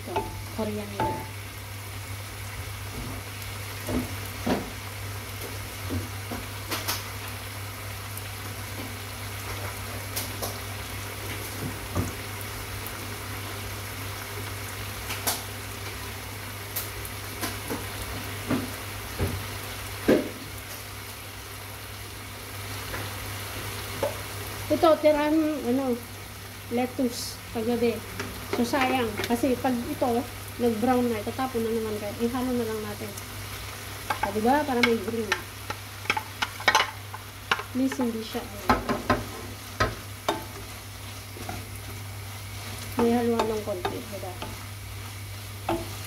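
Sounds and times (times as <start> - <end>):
chicken sizzling in a wok: 0.0 - 46.0.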